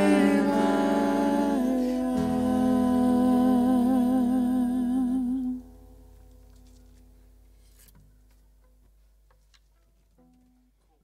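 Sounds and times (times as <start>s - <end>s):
woman singing long note: 0.0s - 5.6s
low held accompaniment: 0.0s - 7.4s.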